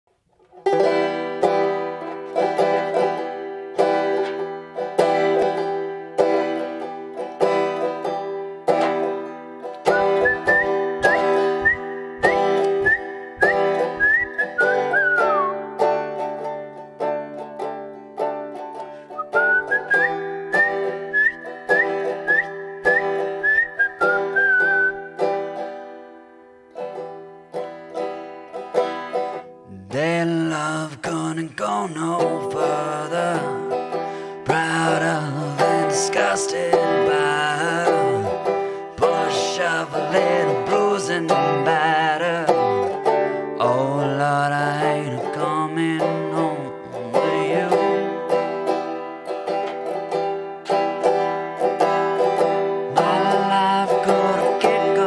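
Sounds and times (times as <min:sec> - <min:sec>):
banjo picking: 0:00.1 - 0:55.0
man whistling a melody: 0:09.9 - 0:15.7, 0:19.1 - 0:25.3.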